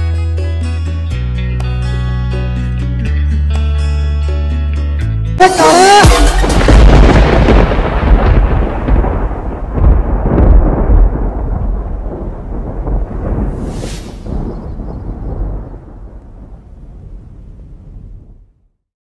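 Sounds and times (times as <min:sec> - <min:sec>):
thunder cracks: 0:06.0 - 0:18.5
thunder rumble: 0:06.2 - 0:18.7
short hiss: 0:13.6 - 0:14.3.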